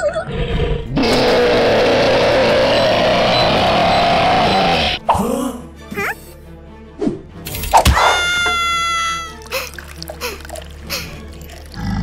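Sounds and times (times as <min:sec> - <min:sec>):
high-pitched squeal: 0:01.0 - 0:05.0
quiet background music: 0:05.0 - 0:12.0.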